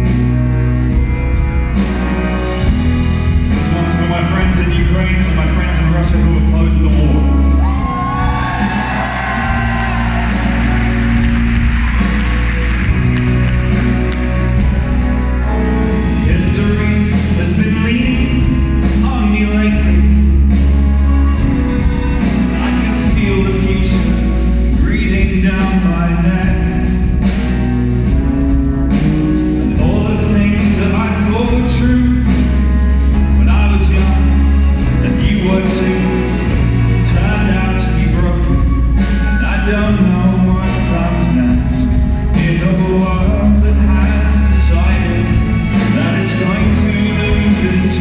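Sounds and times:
bowed violins: 0.0s - 48.0s
orchestra and band playing: 0.0s - 48.0s.

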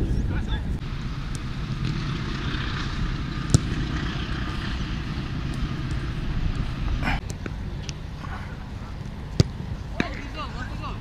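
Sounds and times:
football kick thud: 3.4s - 3.8s, 9.4s - 10.2s.

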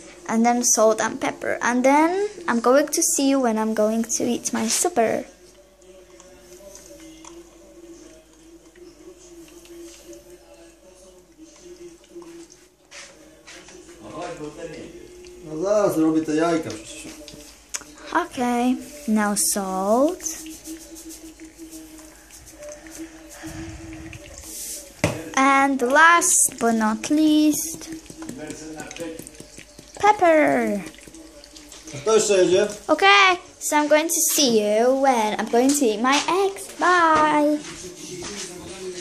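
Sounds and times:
eggs sizzling in oil: 15.2s - 36.8s
salt shaker rattling: 20.2s - 23.0s, 27.2s - 30.0s.

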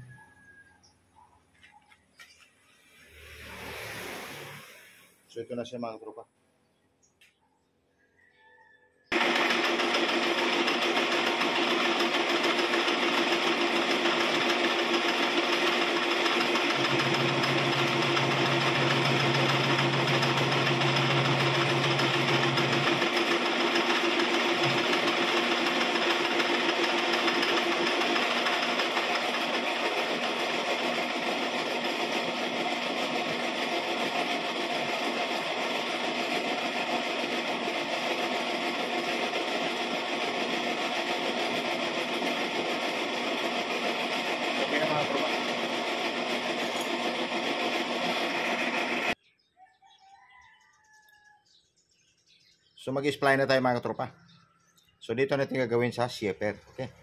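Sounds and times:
metal lathe whine: 9.2s - 49.2s.

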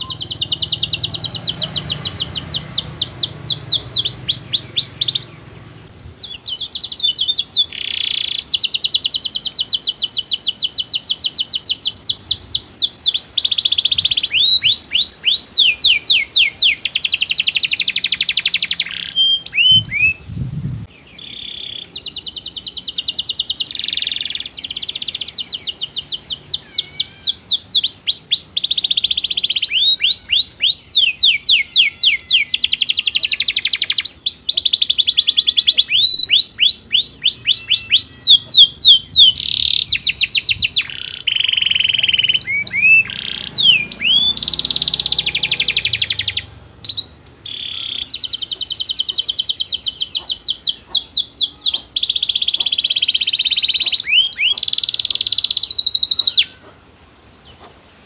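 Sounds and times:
canary singing trills: 0.0s - 58.0s.

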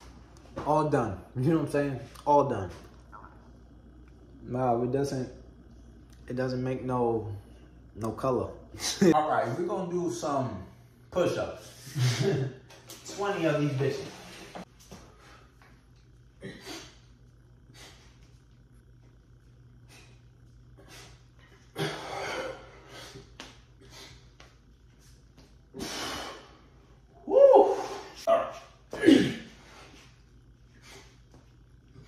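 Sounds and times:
man grunting: 27.3s - 29.5s.

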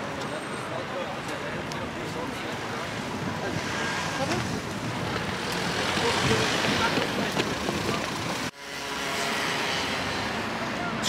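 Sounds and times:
murmuring passers-by: 0.0s - 11.0s
steady traffic noise: 0.0s - 11.0s.

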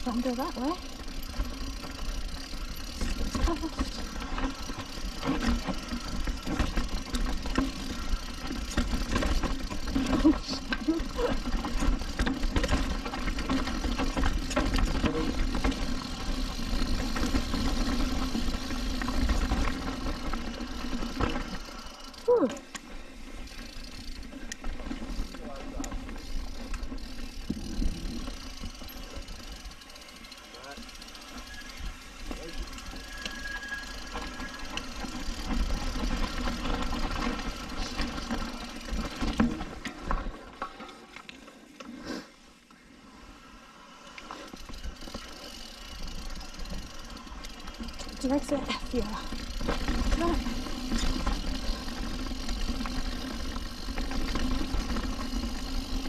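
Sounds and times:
bike tyres rumbling over rocky dirt: 0.0s - 41.5s, 44.4s - 56.0s
bike knocking and rattling: 0.0s - 42.0s, 43.9s - 56.0s.

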